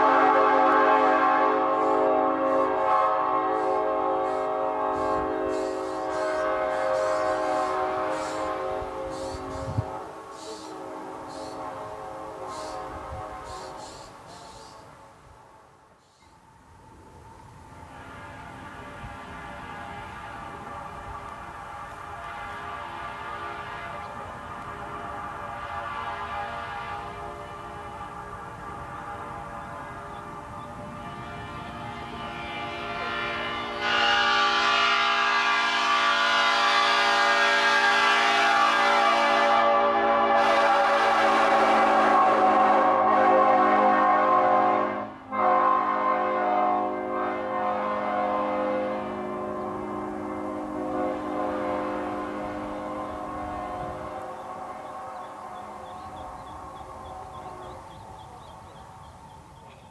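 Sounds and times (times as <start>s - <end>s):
locomotive air horn chord: 0.0s - 15.6s, 17.2s - 59.9s.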